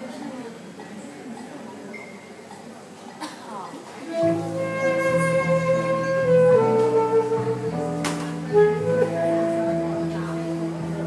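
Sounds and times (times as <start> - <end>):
keyboard accompaniment: 4.1 - 11.0
saxophone melody: 4.1 - 11.0
bass line: 4.2 - 11.0.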